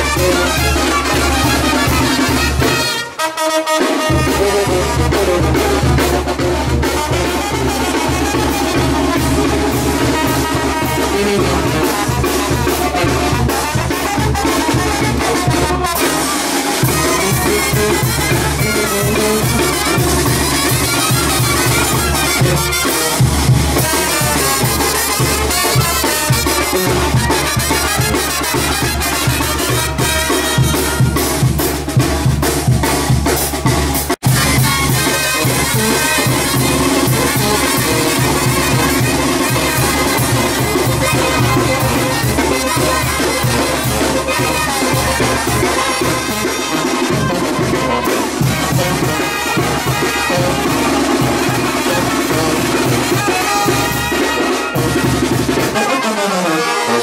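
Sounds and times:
brass band playing dance music: 0.0 - 57.0.

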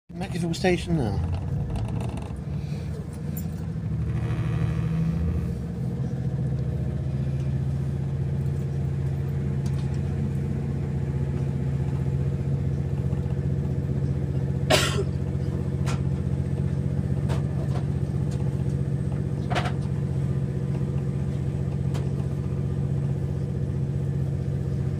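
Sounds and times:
train low drone: 0.1 - 24.9.

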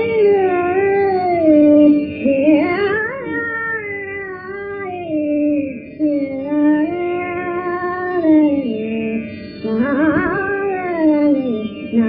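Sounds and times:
woman singing long note: 0.0 - 12.0.

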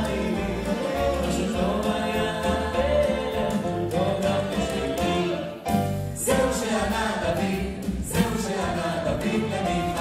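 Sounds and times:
instrumental backing: 0.0 - 10.0
mixed vocal group singing in harmony: 0.0 - 10.0.

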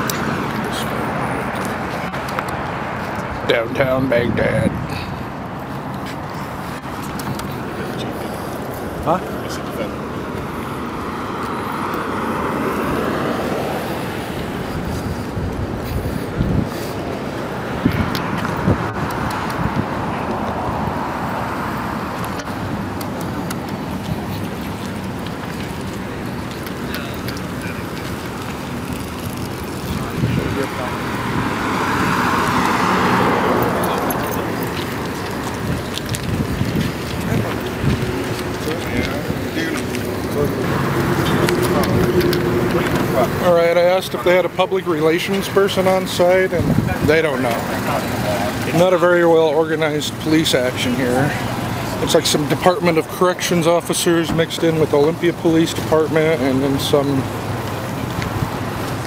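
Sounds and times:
vehicles passing: 0.0 - 59.0
indistinct voices: 17.7 - 57.9.

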